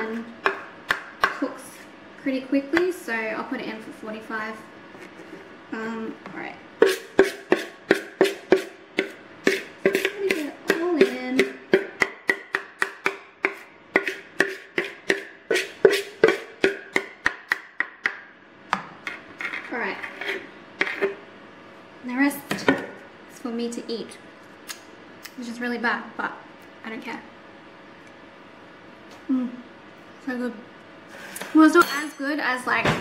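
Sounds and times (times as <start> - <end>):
spoon scraping mixing bowl: 6.8 - 11.8, 13.4 - 16.5, 19.0 - 21.2.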